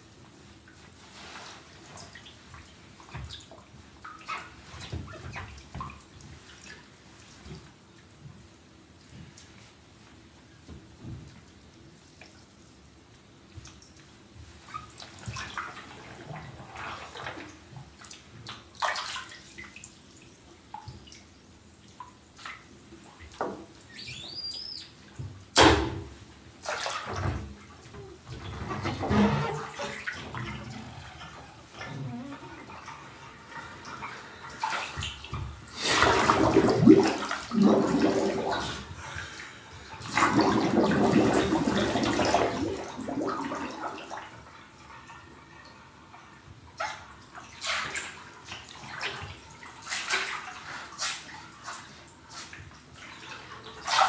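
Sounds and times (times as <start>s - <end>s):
bath water sloshing and splashing: 10.6s - 54.0s.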